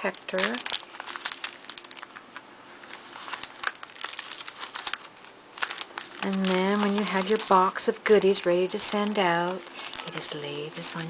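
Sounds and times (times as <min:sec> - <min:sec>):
plastic sleeve crinkling: 0:00.0 - 0:11.0.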